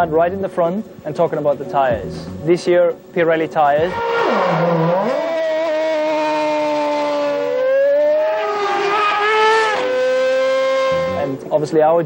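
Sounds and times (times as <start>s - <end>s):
racing car engine at high revs: 3.9s - 11.4s.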